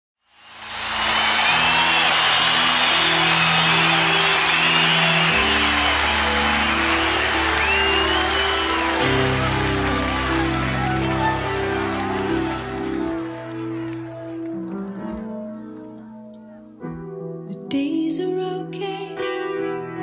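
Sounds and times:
audience applauding and cheering: 0:00.3 - 0:16.0
whistles: 0:00.4 - 0:13.0
slow keyboard chords: 0:01.6 - 0:20.0.

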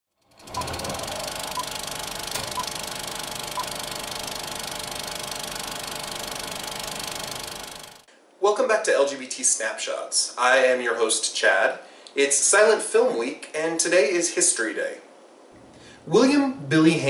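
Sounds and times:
film projector clatter: 0:00.2 - 0:08.1
short high beeps: 0:00.5 - 0:01.8.

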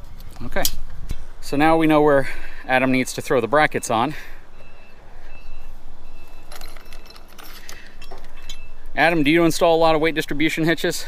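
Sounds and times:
background noise: 0:00.0 - 0:11.0
faint high beeps: 0:03.7 - 0:08.9
metal brackets and bolts clinking: 0:05.4 - 0:09.8.

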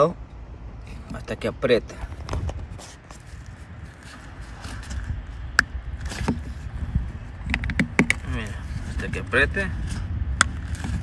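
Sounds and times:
plastic lamp housing handled: 0:07.4 - 0:08.2.

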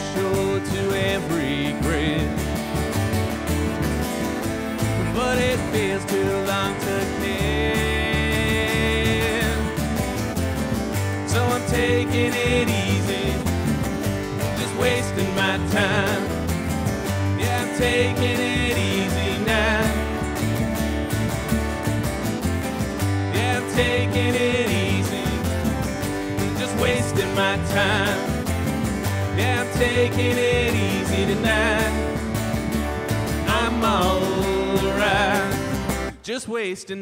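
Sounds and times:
resonator guitar sliding notes: 0:00.0 - 0:36.1
walking upright bass: 0:00.0 - 0:36.1
acoustic guitar strumming: 0:00.0 - 0:36.2.

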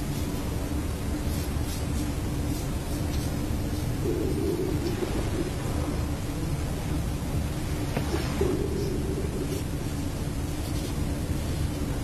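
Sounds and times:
steady low rumble: 0:00.0 - 0:12.0
even hiss: 0:01.8 - 0:11.8.

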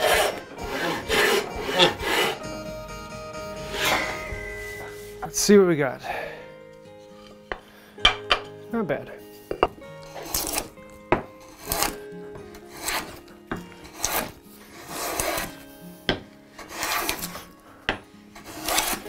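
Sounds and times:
hand plane shaving hisses: 0:00.0 - 0:02.7, 0:03.4 - 0:05.4, 0:11.5 - 0:17.7, 0:18.3 - 0:19.0.

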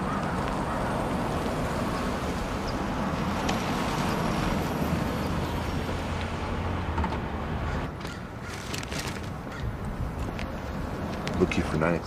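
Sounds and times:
car driving slowly: 0:00.0 - 0:12.0
road traffic rumble: 0:00.0 - 0:12.0.

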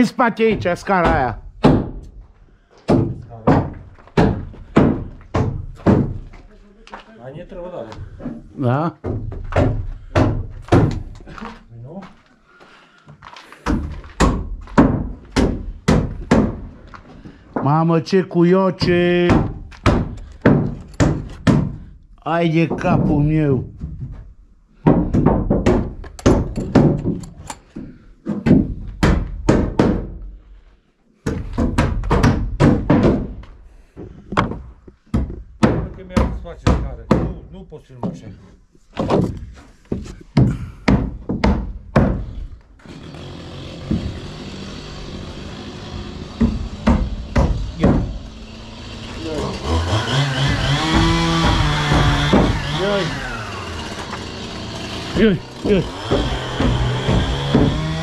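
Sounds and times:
rapid knocking: 0:55.5 - 0:58.0.

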